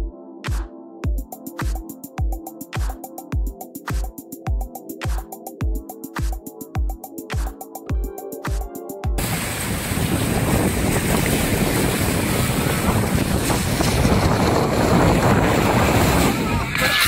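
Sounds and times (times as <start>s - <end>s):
water rushing under raft: 9.2s - 17.0s
wind buffeting microphone: 9.2s - 17.0s.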